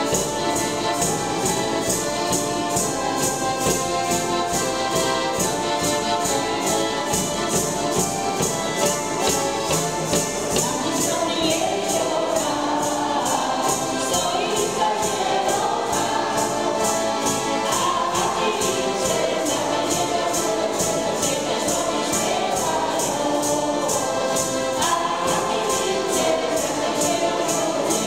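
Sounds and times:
accordions: 0.0s - 28.0s
high percussion beat: 0.0s - 28.0s
men and women singing: 8.6s - 28.0s.

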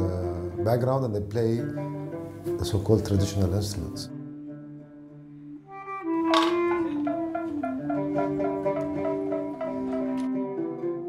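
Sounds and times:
plucked string notes: 5.9s - 11.0s.

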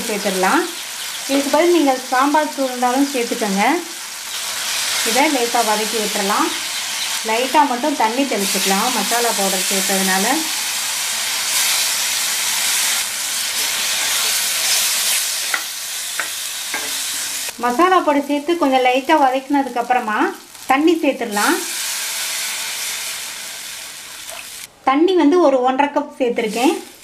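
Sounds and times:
food sizzling in oil: 0.0s - 24.7s, 26.4s - 27.0s.

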